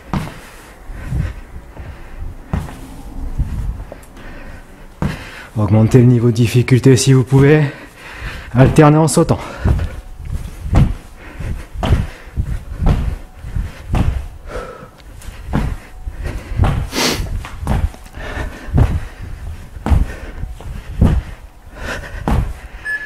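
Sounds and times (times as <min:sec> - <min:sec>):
feet thudding on floor: 0:00.0 - 0:04.0, 0:05.0 - 0:05.3, 0:09.5 - 0:21.4, 0:22.0 - 0:22.6
hard breath out: 0:00.1 - 0:05.6, 0:09.4 - 0:22.9.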